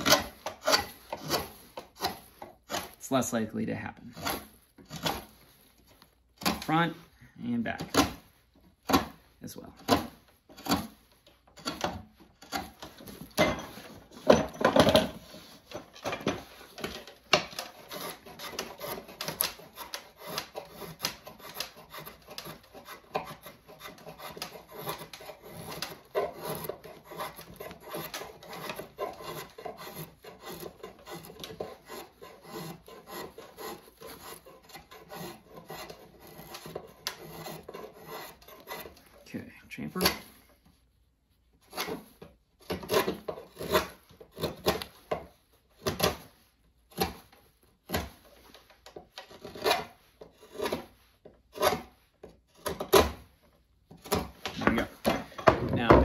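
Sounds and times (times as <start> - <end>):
drawknife cutting wood: 0.0 - 3.0, 4.1 - 7.0, 7.7 - 39.2, 39.9 - 40.4, 41.6 - 53.3, 53.9 - 56.0
rasp strokes on wood: 0.0 - 3.2, 4.1 - 40.7, 41.6 - 53.3.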